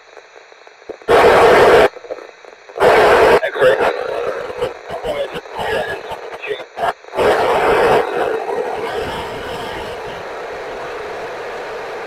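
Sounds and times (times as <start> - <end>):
broken radio audio: 0.0 - 12.0
radio static hiss: 0.0 - 12.0.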